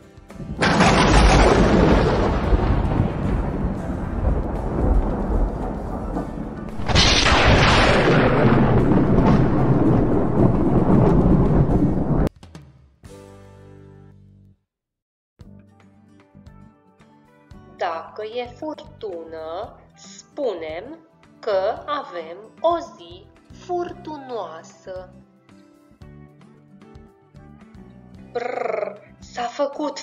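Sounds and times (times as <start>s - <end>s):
thunder rumbling: 0.4s - 12.3s.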